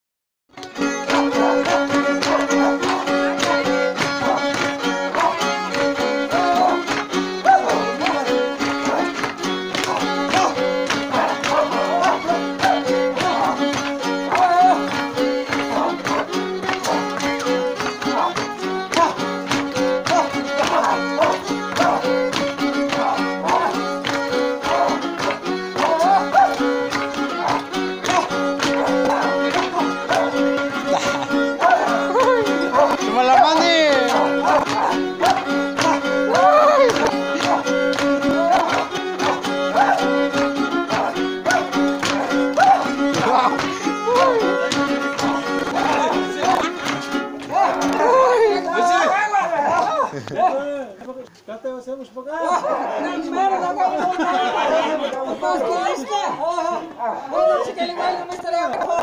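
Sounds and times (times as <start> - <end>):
rhythmic accompaniment: 0.5 - 49.1
fiddle melody: 0.5 - 49.9, 53.2 - 59.0.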